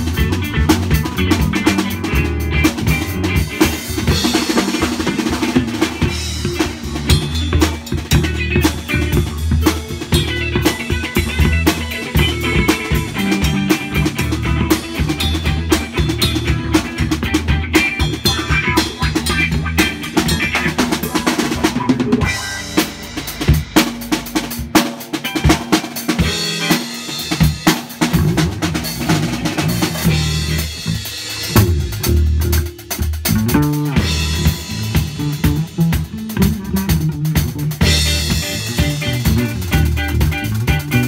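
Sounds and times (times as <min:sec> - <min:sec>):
drum kit: 0:00.0 - 0:41.0
electric bass: 0:00.0 - 0:41.0
electric guitar: 0:00.0 - 0:41.0.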